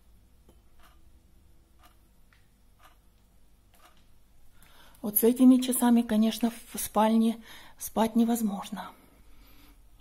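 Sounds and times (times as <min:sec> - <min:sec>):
wall clock ticking: 0:00.5 - 0:04.1.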